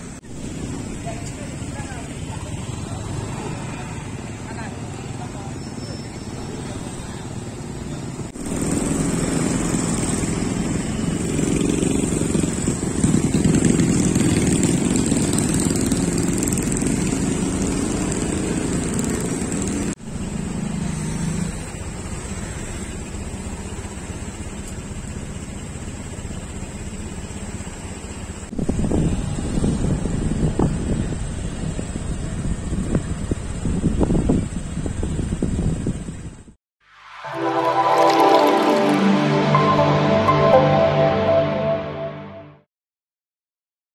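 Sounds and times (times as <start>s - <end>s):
scooters and cars passing: 0.0s - 36.4s.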